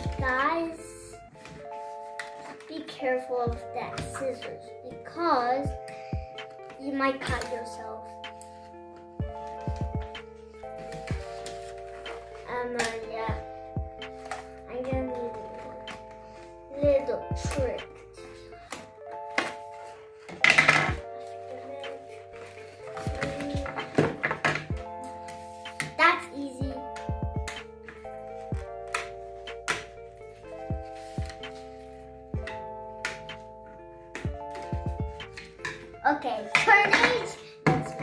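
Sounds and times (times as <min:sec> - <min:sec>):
background music of held chords: 0:00.0 - 0:38.0
child's vocal sounds: 0:22.9 - 0:24.2.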